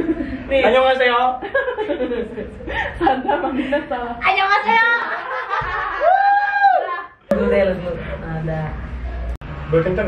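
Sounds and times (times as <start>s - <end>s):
young women laughing: 1.5s - 4.2s, 4.8s - 7.2s.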